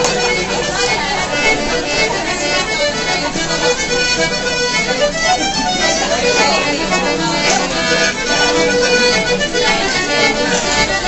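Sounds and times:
acoustic guitar: 0:00.0 - 0:11.0
melody instrument holding notes: 0:00.0 - 0:11.0
people's voices: 0:00.0 - 0:11.0.

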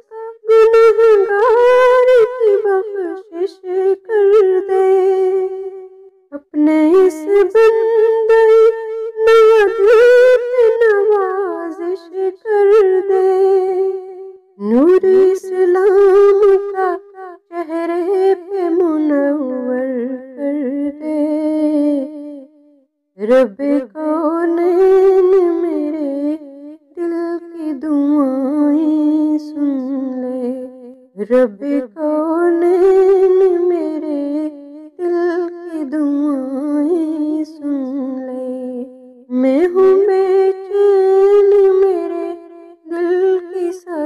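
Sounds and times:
woman singing unaccompanied: 0:00.0 - 0:22.5, 0:23.2 - 0:44.0.

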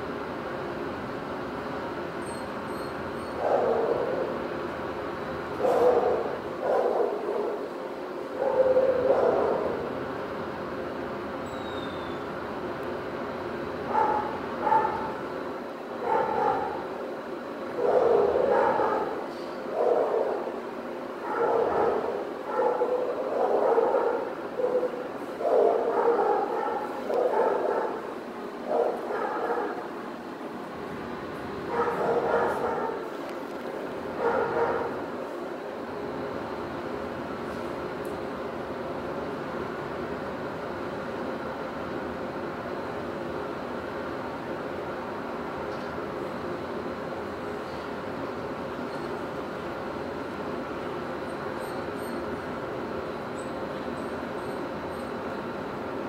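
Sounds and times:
steady background noise: 0:00.0 - 0:56.0
dog barking and yipping: 0:03.3 - 0:04.3, 0:05.6 - 0:07.6, 0:08.4 - 0:09.8, 0:13.9 - 0:15.2, 0:16.0 - 0:16.9, 0:17.8 - 0:19.2, 0:19.8 - 0:20.5, 0:21.2 - 0:28.0, 0:28.7 - 0:29.8, 0:31.7 - 0:33.1, 0:34.2 - 0:35.0.

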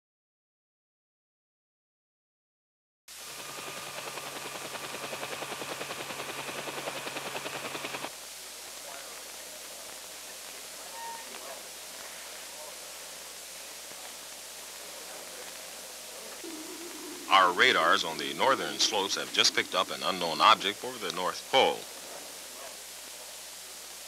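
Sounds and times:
old film soundtrack hiss: 0:03.1 - 0:24.0
short beep: 0:11.0 - 0:11.3
rapid electronic pulsing: 0:16.5 - 0:21.6.

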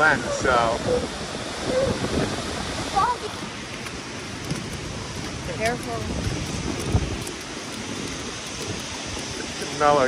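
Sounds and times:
waterfall rushing: 0:00.0 - 0:10.0.

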